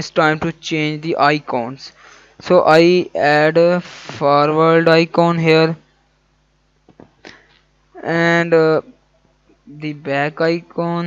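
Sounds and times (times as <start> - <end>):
soft breathy noise: 1.9 - 2.4.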